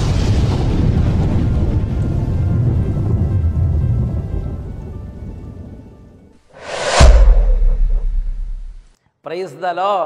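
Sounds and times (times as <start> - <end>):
rolling thunder rumble: 0.0 - 6.2
title music: 6.6 - 8.8.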